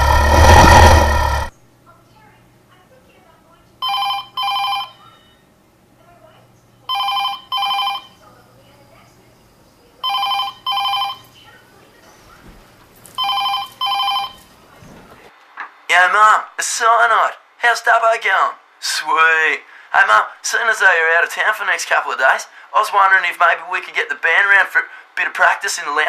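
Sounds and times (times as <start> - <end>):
telephone double ring: 3.8 - 5.0, 6.9 - 8.2, 10.0 - 11.3, 13.2 - 14.5.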